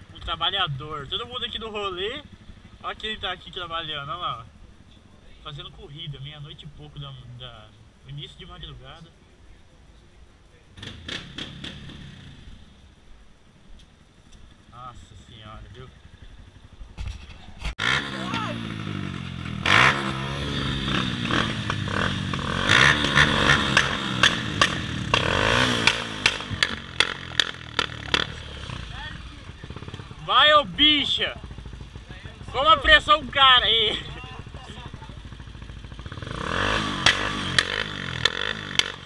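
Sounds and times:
motorcycle engine revving: 0:00.0 - 0:09.1, 0:10.6 - 0:13.1, 0:14.4 - 0:39.0
sharp clattery spikes: 0:20.9 - 0:28.5, 0:36.6 - 0:39.0.

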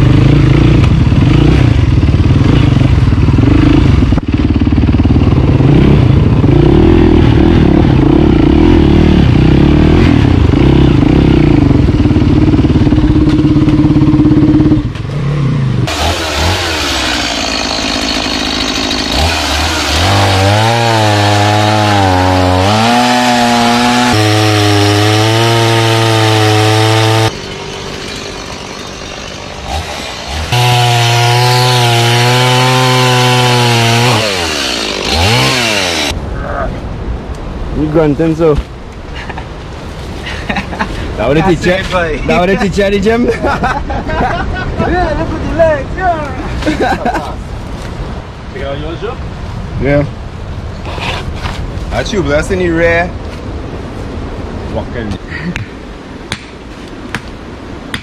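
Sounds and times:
dirt bike engine: 0:00.0 - 0:36.3
chainsaw cutting wood: 0:15.8 - 0:36.2.

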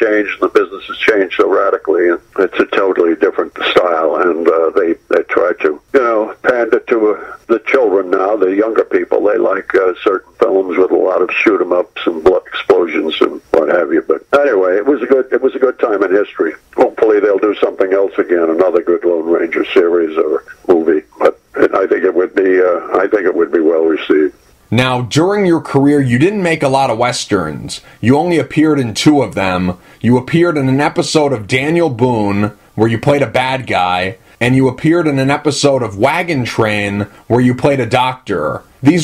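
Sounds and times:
man talking over telephone: 0:00.0 - 0:39.0.

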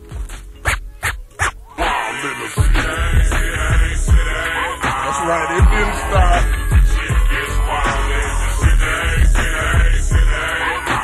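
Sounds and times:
slowed hip-hop beat with bass kicks: 0:00.0 - 0:11.0
drawn-out wavering vocal: 0:01.7 - 0:11.0.

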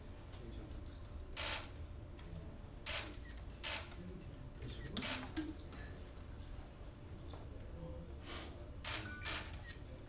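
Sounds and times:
camera shutters clicking: 0:01.4 - 0:01.7, 0:02.9 - 0:03.9, 0:04.8 - 0:05.4, 0:08.8 - 0:09.8.

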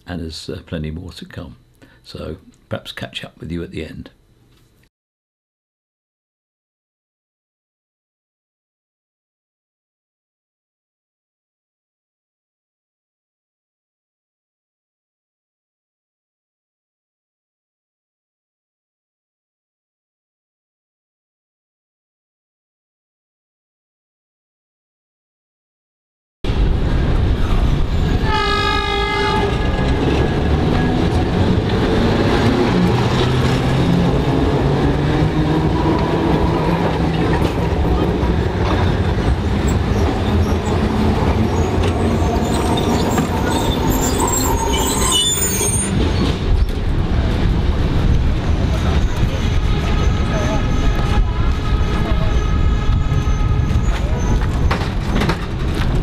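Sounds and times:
street traffic: 0:26.5 - 0:56.0
tram running: 0:26.5 - 0:56.0
horn sounding: 0:28.1 - 0:30.2, 0:49.4 - 0:54.2
high squeal: 0:39.9 - 0:46.7.

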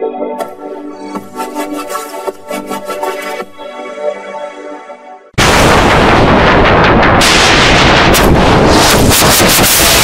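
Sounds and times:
heavily distorted noise: 0:05.4 - 0:10.0.

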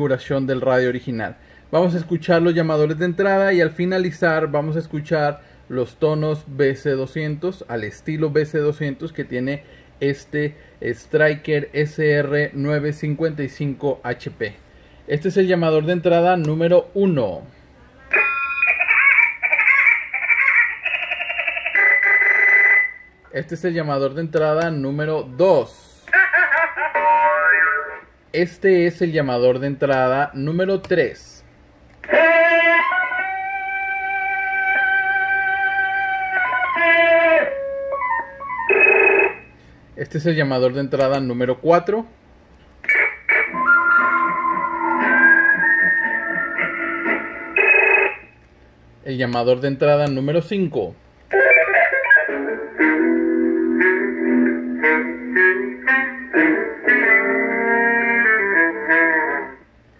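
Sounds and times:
warbling electronic call tones: 0:18.1 - 0:19.0, 0:36.8 - 0:39.5, 0:42.9 - 0:48.4
held high tone: 0:18.1 - 0:20.2, 0:32.0 - 0:39.6, 0:42.9 - 0:48.4
radio call jingle: 0:18.1 - 0:25.4, 0:26.1 - 0:28.1, 0:38.7 - 0:39.5, 0:42.8 - 0:48.4.

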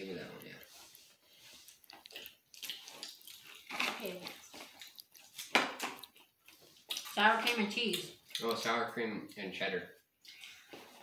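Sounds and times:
crisps crunching: 0:01.6 - 0:08.7.

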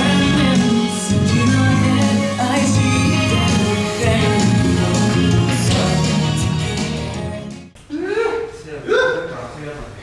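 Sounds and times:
man exclaiming: 0:07.9 - 0:09.4.

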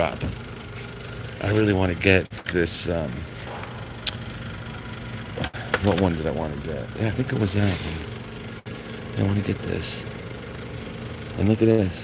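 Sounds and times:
low store hum: 0:00.0 - 0:12.0.

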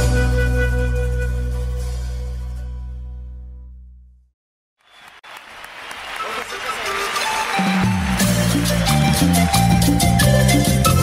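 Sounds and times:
applause: 0:04.8 - 0:11.0
crowd noise: 0:04.9 - 0:10.4.

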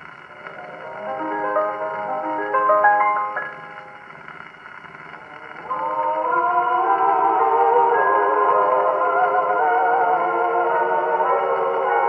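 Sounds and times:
band music on gramophone: 0:00.0 - 0:12.0
record surface hiss and crackle: 0:00.0 - 0:12.0.

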